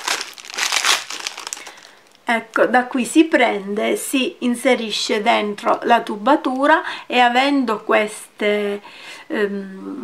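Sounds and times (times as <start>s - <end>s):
plastic packaging crinkling: 0.0s - 2.7s.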